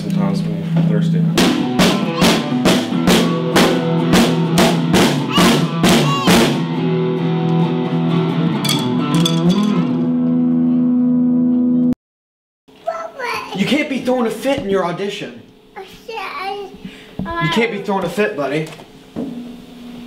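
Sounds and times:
drum kit playing: 1.3 - 10.0
electric guitar: 1.4 - 11.9.

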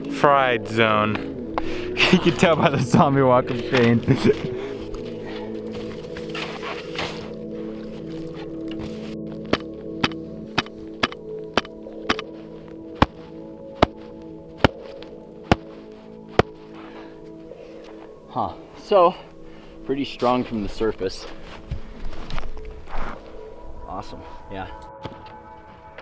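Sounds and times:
background music with held notes: 0.0 - 26.0.

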